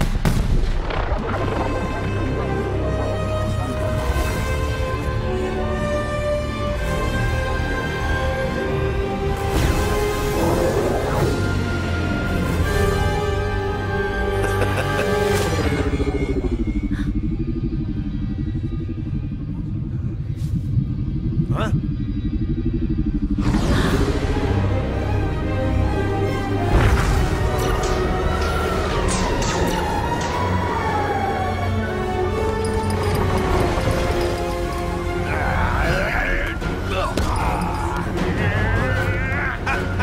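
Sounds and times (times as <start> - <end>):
cartoon explosions with rumble: 0.0 - 4.2
deep rumble with pulsing hum: 0.0 - 40.0
film score music: 0.0 - 40.0.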